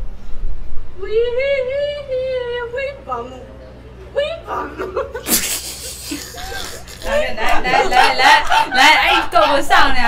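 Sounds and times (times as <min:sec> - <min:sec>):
person laughing: 0:04.5 - 0:09.6.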